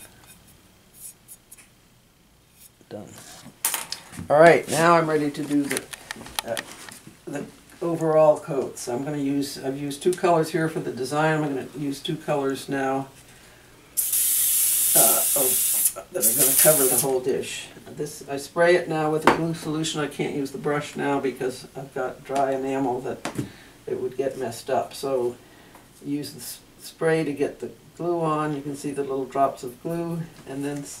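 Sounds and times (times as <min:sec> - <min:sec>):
paintbrush brushing strokes: 0:00.0 - 0:01.7
spray bottle hiss: 0:14.0 - 0:17.1.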